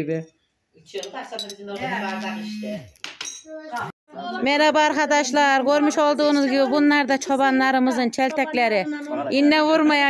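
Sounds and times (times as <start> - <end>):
tableware clinking: 0.9 - 2.2, 3.1 - 3.5.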